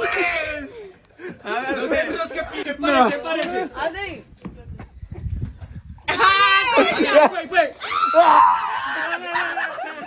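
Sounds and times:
man screaming: 7.8 - 9.4
shrill cries: 7.8 - 9.4
laughing: 8.8 - 10.0.

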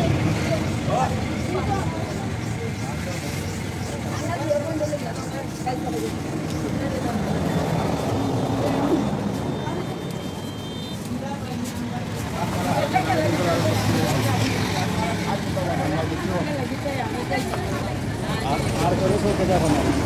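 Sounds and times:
people talking in background: 0.0 - 20.0.

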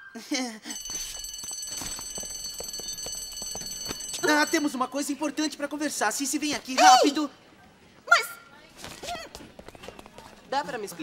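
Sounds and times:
electric school bell ringing: 0.7 - 5.0.

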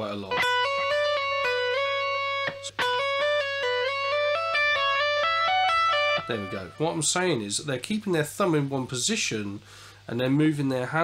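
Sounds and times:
electric guitar legato line: 0.3 - 7.4.

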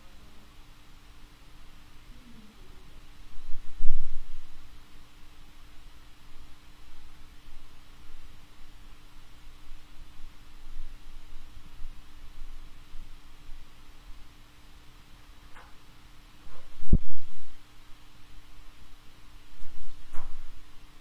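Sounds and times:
faint steady hum: 0.0 - 21.0
steady hiss: 0.0 - 21.0.

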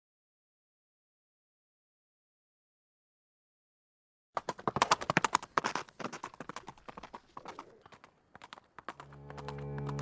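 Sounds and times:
hooves clip-clopping on road: 4.4 - 10.0.

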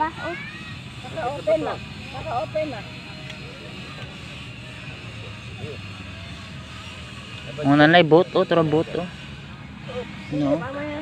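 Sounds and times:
distant motorboat engine droning: 0.0 - 11.0.

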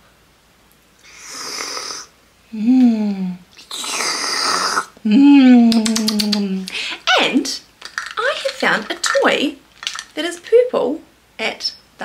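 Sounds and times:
woman slurping: 1.0 - 2.1, 3.6 - 5.0.

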